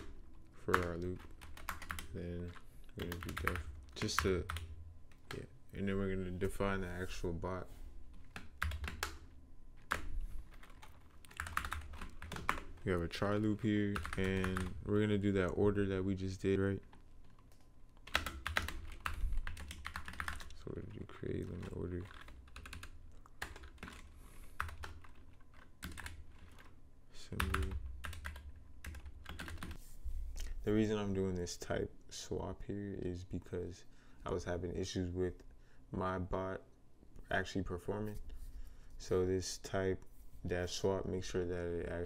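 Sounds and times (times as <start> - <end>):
typing on computer keyboard: 0.0 - 5.4, 8.1 - 9.2, 9.8 - 12.8, 13.4 - 14.8, 16.8 - 20.6, 21.5 - 26.7, 27.4 - 29.8.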